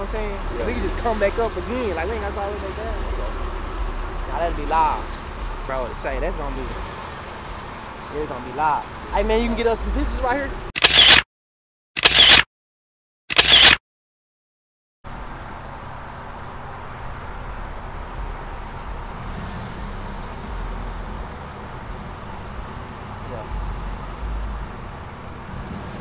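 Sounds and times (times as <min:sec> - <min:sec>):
road traffic rumble: 0:00.0 - 0:11.0, 0:15.0 - 0:26.0.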